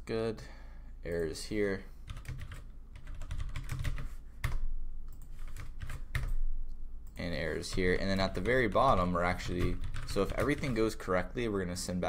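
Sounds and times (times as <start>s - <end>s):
computer keyboard typing: 2.1s - 6.4s, 7.0s - 10.8s.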